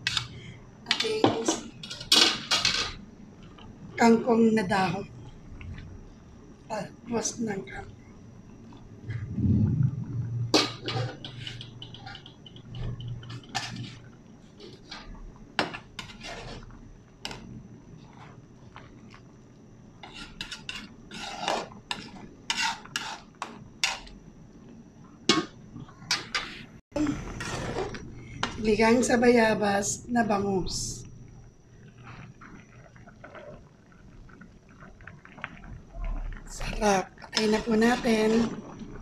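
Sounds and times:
metal ladle scraping a pan: 10.5s - 17.4s, 20.0s - 24.1s, 27.3s - 28.0s.

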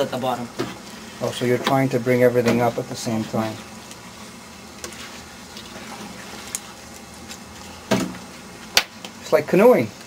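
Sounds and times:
cooking pot hissing: 0.0s - 10.0s.

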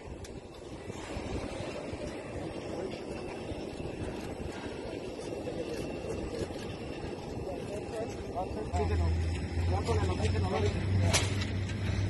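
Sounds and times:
aircraft and vehicles rumbling: 0.0s - 12.0s
people's voices: 2.2s - 11.7s.

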